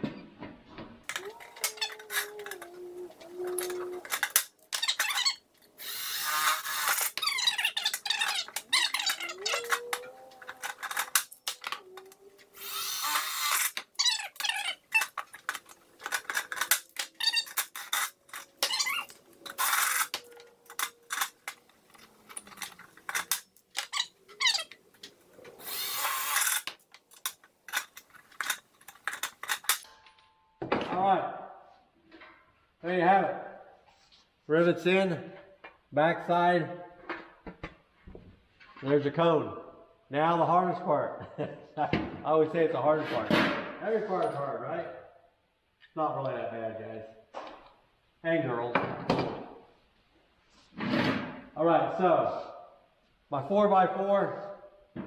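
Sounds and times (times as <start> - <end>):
cordless drill boring through sheet metal: 3.4 - 7.9, 12.6 - 14.7, 25.6 - 26.7
rivet gun clicks and metal clatter: 3.5 - 5.2, 13.5 - 24.0, 26.3 - 29.9.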